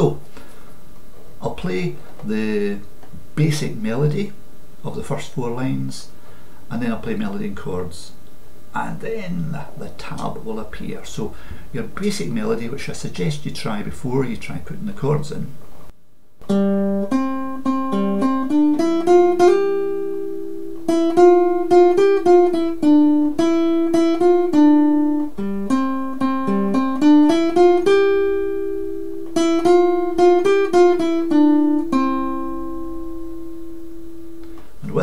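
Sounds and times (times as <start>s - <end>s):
classical guitar melody: 16.4s - 35.0s.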